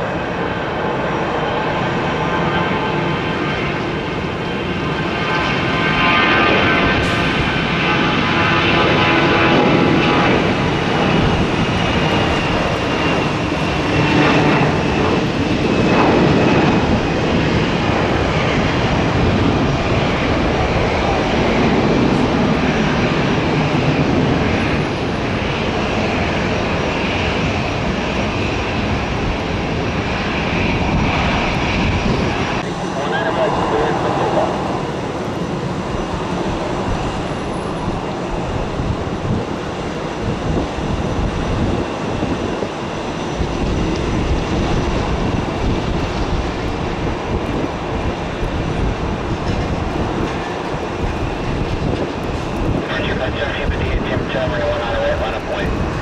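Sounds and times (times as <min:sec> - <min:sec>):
jet engines at takeoff power: 0:00.0 - 0:56.0.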